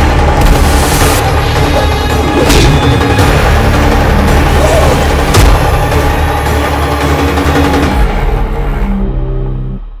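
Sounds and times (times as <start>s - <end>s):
dramatic trailer music: 0.0s - 10.0s.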